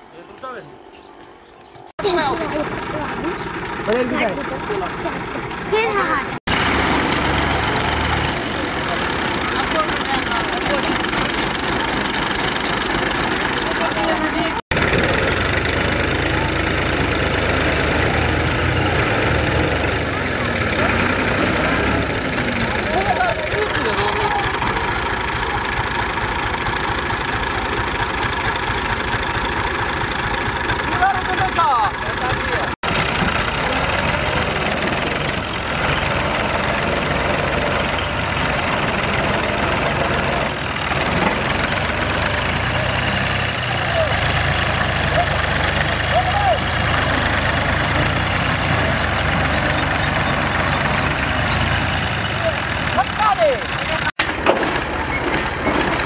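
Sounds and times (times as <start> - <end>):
tractor diesel engines under load: 0.0 - 56.0.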